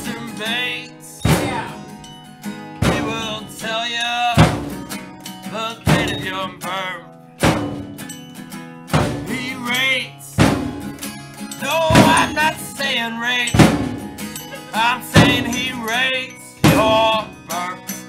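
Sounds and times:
man singing: 0:00.0 - 0:01.9, 0:02.8 - 0:04.6, 0:05.4 - 0:07.2, 0:09.2 - 0:10.5, 0:11.6 - 0:18.0
guitar and drum hits: 0:01.2 - 0:03.8, 0:04.4 - 0:05.1, 0:05.8 - 0:06.8, 0:07.4 - 0:09.8, 0:10.4 - 0:12.8, 0:13.5 - 0:16.0, 0:16.6 - 0:17.4.

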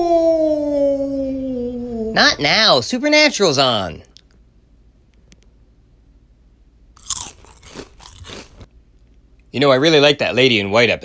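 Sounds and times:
crunchy food chewing: 0:07.0 - 0:09.2.

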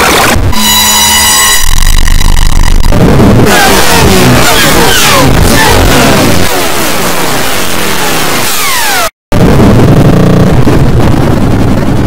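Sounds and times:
harsh distorted noise: 0:00.0 - 0:12.0.

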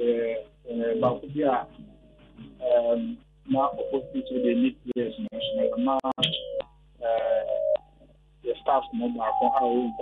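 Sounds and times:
voice over telephone line: 0:00.0 - 0:01.8, 0:02.6 - 0:06.4, 0:07.0 - 0:07.7, 0:08.5 - 0:10.0.

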